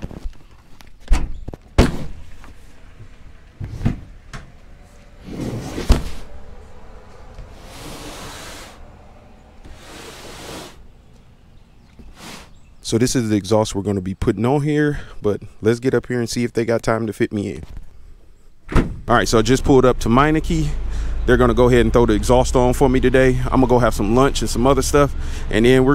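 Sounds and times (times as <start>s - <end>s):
tailgate click and thunks: 18.7s - 19.1s.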